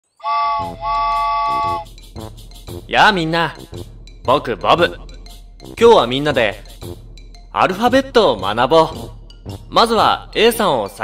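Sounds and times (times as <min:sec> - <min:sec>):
cartoon train whistle: 0:00.1 - 0:01.9
music beat: 0:00.3 - 0:10.6.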